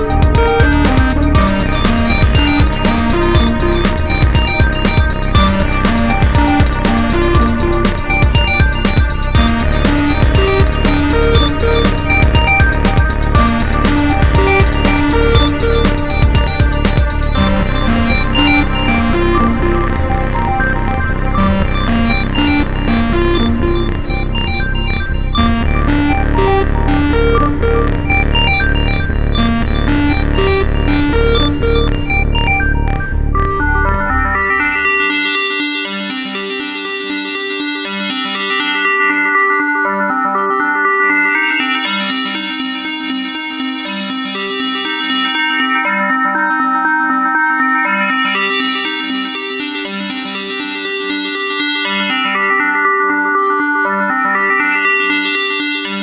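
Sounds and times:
driving drum beat: 0.0 - 18.6
heavy bass: 0.0 - 35.1
repeating synthesizer pattern: 0.0 - 56.0.

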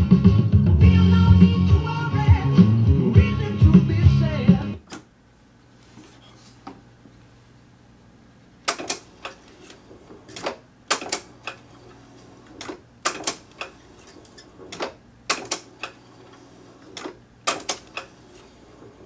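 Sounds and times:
tape deck buttons clicking: 10.3 - 11.7, 17.0 - 18.1.

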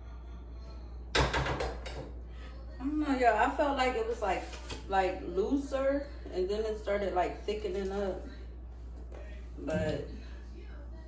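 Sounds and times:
steady low hum: 2.0 - 11.0.

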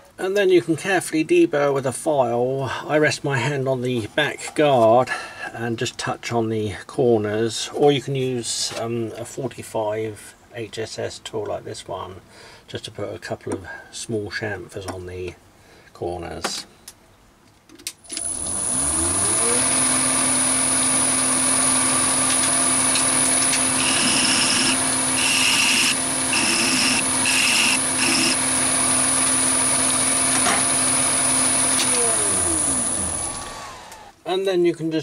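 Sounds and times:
lathe motor whining: 18.1 - 34.2.

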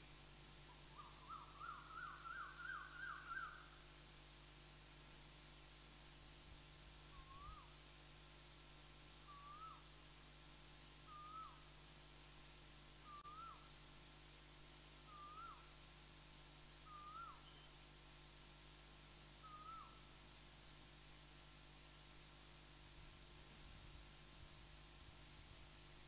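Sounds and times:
steady low hum: 0.0 - 26.0
bird whistled call: 0.9 - 3.7, 7.1 - 7.7, 9.3 - 9.8, 11.0 - 11.6, 13.0 - 13.6, 15.1 - 15.7, 16.9 - 17.8, 19.4 - 20.6.

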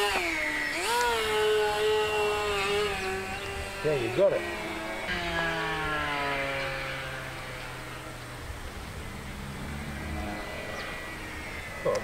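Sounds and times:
model plane motors droning: 0.0 - 12.0.

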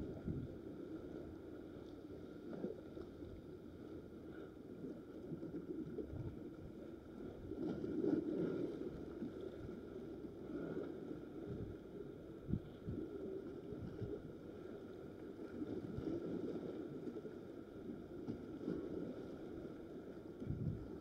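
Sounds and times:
wind on microphone: 0.0 - 0.5, 12.4 - 14.3, 20.4 - 21.0
sea water lapping: 0.0 - 21.0.

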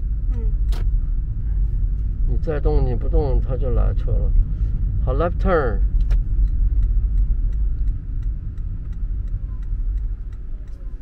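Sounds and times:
car driving rumble from inside: 0.0 - 11.0.

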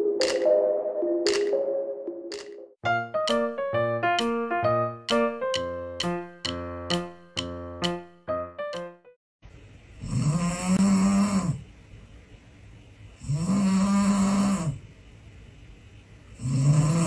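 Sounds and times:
dog snoring loudly: 10.0 - 11.6, 13.2 - 14.8, 16.4 - 17.0.

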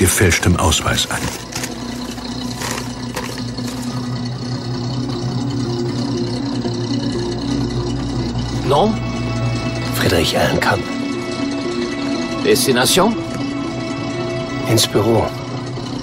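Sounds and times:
vehicle engine idling: 0.0 - 16.0.

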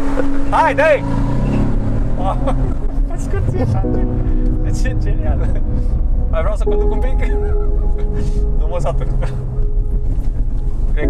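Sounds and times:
car engine accelerating hard: 0.0 - 11.0
music playing: 0.0 - 11.0.

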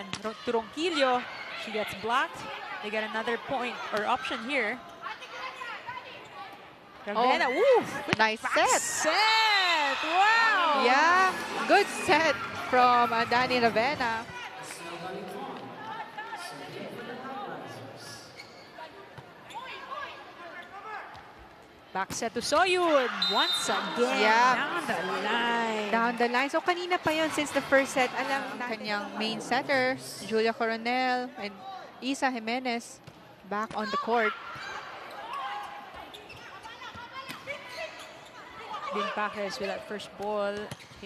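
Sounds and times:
sneakers squeaking on court: 18.3 - 19.9, 33.0 - 38.7, 40.4 - 41.0.

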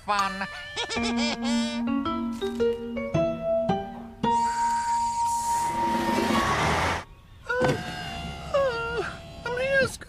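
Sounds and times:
cartoon whistle tone: 4.3 - 6.6.

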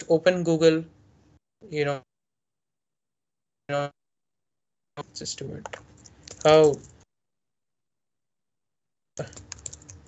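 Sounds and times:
computer keyboard keystrokes: 9.2 - 10.0.

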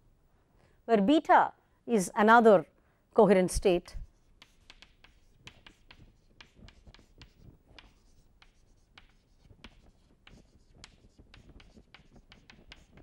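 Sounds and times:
chalk writing on chalkboard: 4.0 - 13.0.

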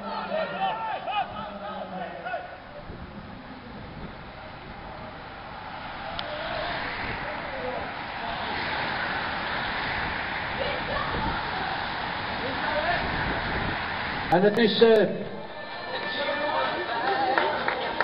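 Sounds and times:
bicycles passing by: 0.0 - 18.0
spectators' voices: 0.0 - 18.0.

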